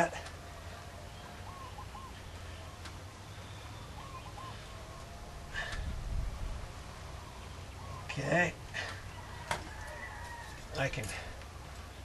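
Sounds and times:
soft bird calls: 0.0 - 6.0, 7.0 - 12.0
low steady hum: 0.0 - 12.0.

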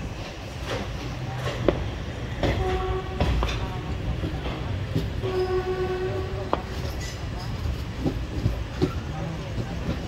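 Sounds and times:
moving train rumble: 0.0 - 10.0
train horn blasts: 2.5 - 3.6, 5.2 - 6.5
train wheel clicks: 6.5 - 10.0.

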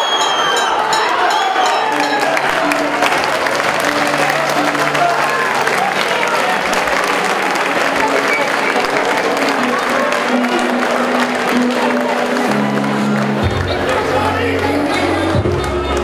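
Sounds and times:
crowd applauding and calling out: 0.0 - 16.0
music playing: 0.0 - 16.0.

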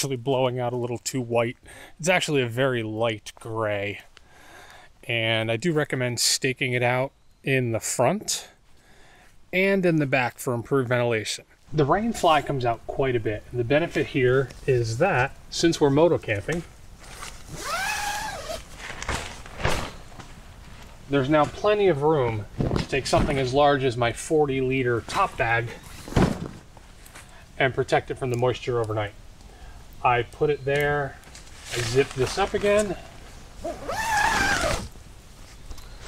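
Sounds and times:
tent zipper being pulled: 17.2 - 19.8, 33.6 - 35.0
short zipper rasps: 17.5 - 18.7, 33.6 - 35.0.

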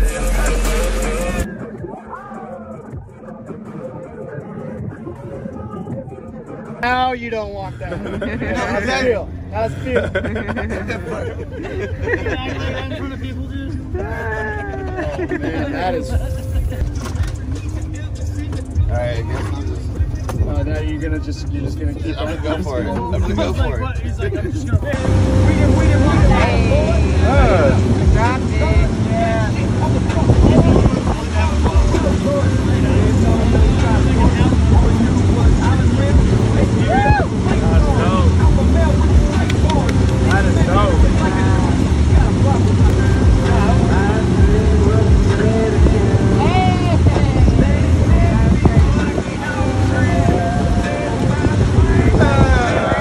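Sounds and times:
people calling out: 1.4 - 6.6, 7.8 - 16.8, 21.9 - 30.6, 31.2 - 53.0
boat engine running: 7.7 - 53.0
rushing water: 25.0 - 53.0.

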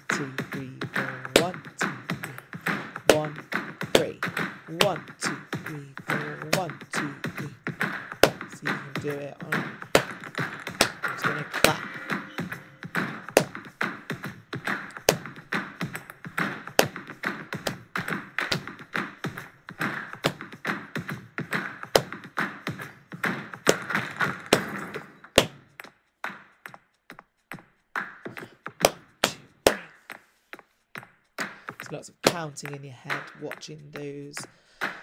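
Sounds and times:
backing track with steady beat: 0.0 - 26.7, 27.4 - 35.0
hand claps: 0.0 - 27.3, 28.0 - 30.7, 31.3 - 35.0.

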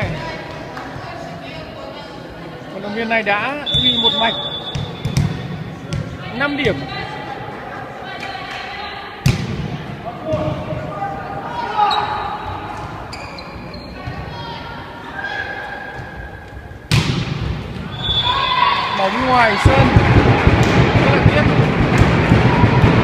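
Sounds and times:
volleyball struck hard: 16.9 - 17.6.

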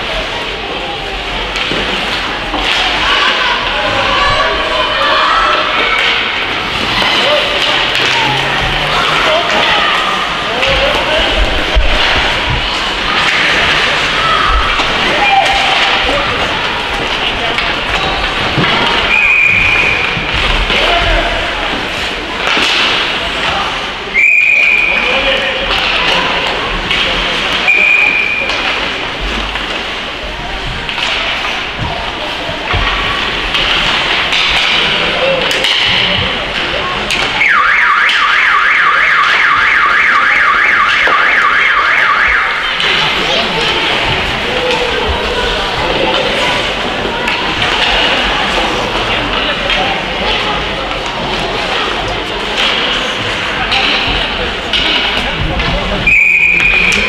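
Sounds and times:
skates on ice: 0.0 - 23.9
hockey sticks clacking: 0.0 - 57.0
voices: 0.0 - 57.0
referee whistle blasts: 19.1 - 20.0, 24.2 - 25.0, 27.7 - 28.5, 56.1 - 57.0.

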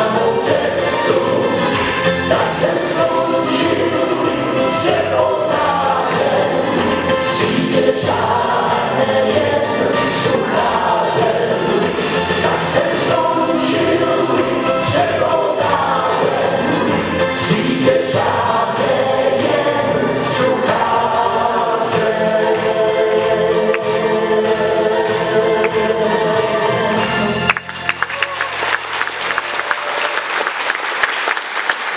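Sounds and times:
musical accompaniment: 0.0 - 30.0.

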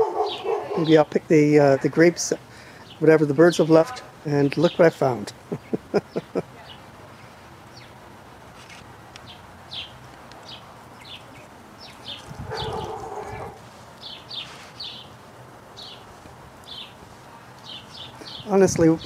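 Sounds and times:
small birds chirping: 0.0 - 1.2, 2.3 - 19.0.

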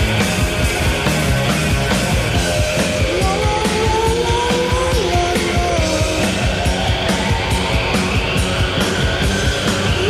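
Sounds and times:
drums beating: 0.0 - 10.0
rock band playing: 0.0 - 10.0.

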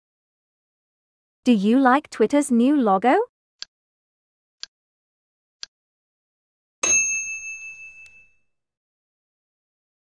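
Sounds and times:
notification ding: 6.8 - 8.4.

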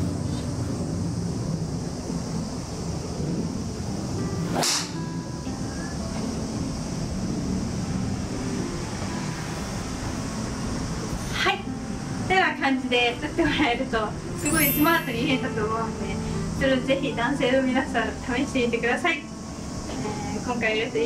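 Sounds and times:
background music: 3.3 - 21.0.

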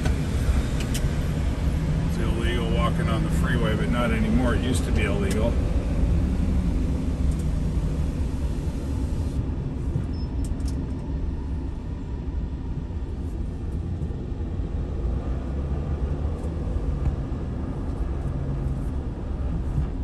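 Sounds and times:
car road and engine rumble: 0.0 - 20.0.

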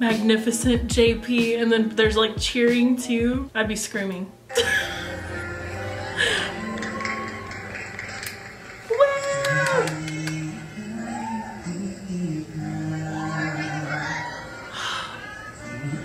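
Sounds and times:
backing music: 0.0 - 16.0
man singing slow song: 9.3 - 16.0.

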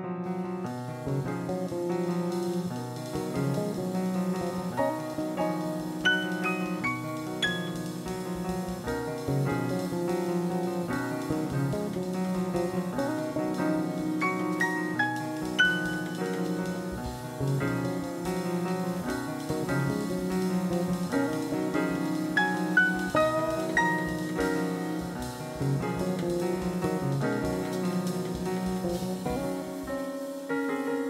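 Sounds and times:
piano: 0.0 - 31.0
drum kit: 0.1 - 31.0.

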